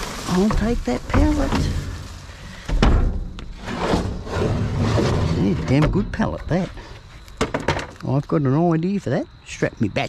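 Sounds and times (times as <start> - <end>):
wood scraping against metal dumpster: 0.0 - 8.0.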